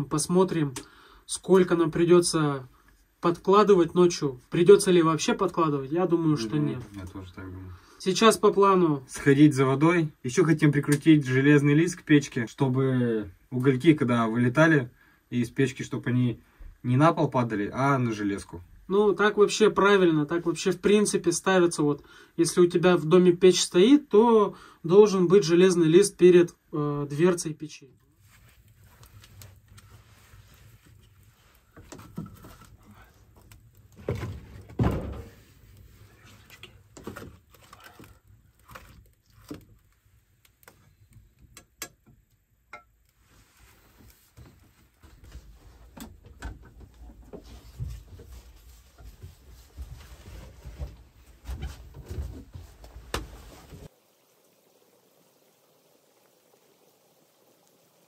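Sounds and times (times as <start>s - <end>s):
firewood knocking into stove: 34.0s - 35.4s.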